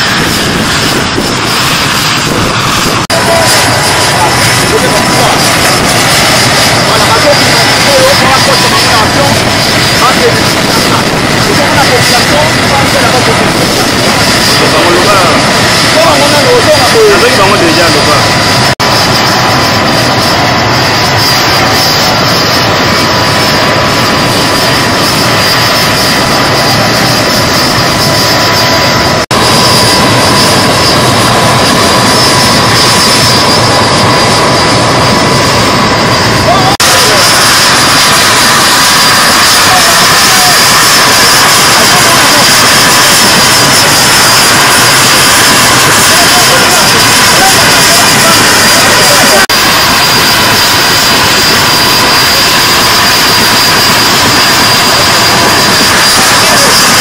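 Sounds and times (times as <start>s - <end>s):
helicopter turbine engines running: 0.0s - 57.0s.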